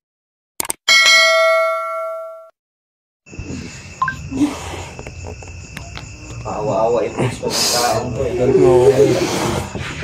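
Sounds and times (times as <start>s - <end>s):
notification bell ding: 0.9s - 2.5s.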